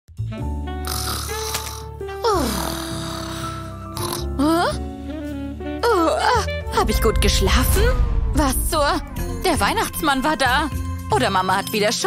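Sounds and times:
light background music: 0.2 - 12.0
comedic raspy snore: 0.8 - 4.5.

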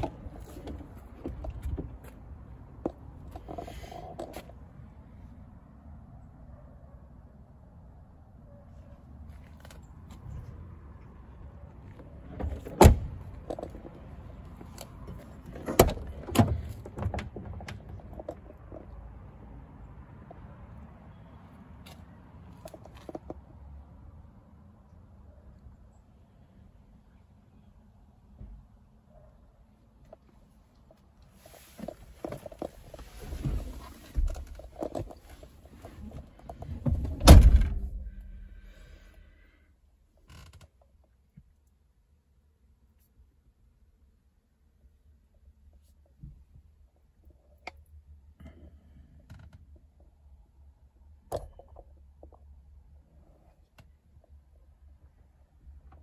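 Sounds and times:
car door shutting: 12.3 - 13.4, 36.7 - 38.1.

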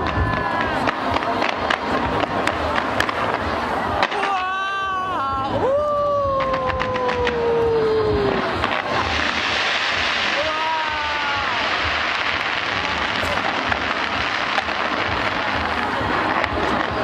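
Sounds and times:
fireworks crackling and booming: 0.0 - 17.0
spectator cheering: 4.0 - 8.6, 10.2 - 12.9.

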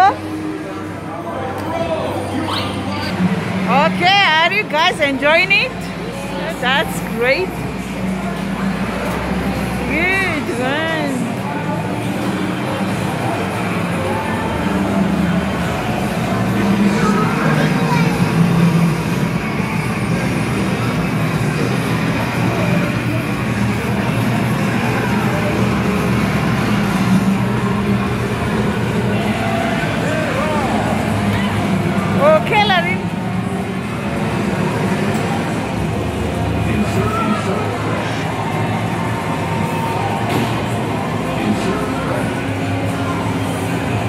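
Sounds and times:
arcade game music and engine effects: 0.0 - 44.0.

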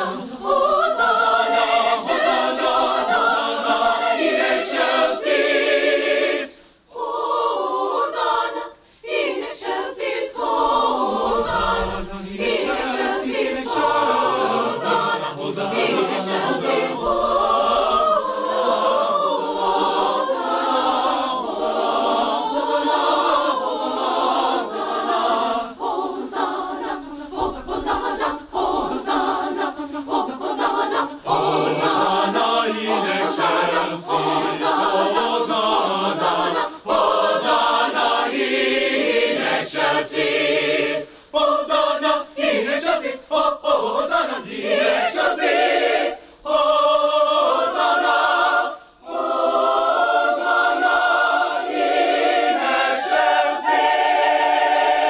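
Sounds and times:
choir singing: 0.0 - 55.0.

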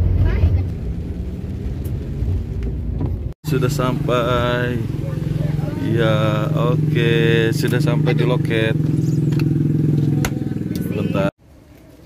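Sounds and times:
car engine idling: 0.0 - 11.3.

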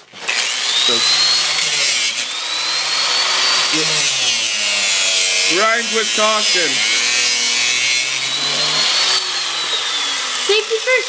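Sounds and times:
cut-off wheel grinding steel chain: 0.3 - 10.8.

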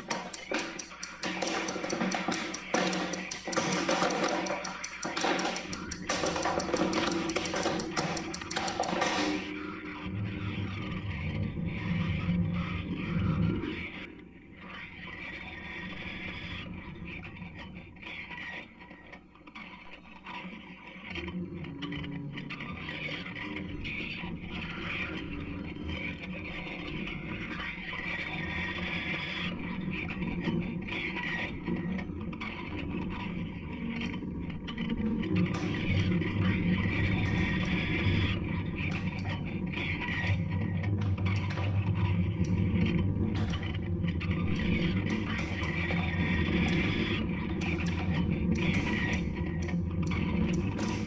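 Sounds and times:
experimental electronic noise music: 0.0 - 18.8, 19.6 - 51.0.

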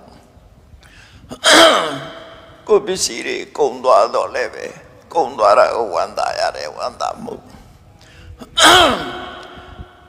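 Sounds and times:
man's faint breath: 0.8 - 1.3, 7.6 - 8.4
man's drawn-out falling voice: 8.5 - 9.8.

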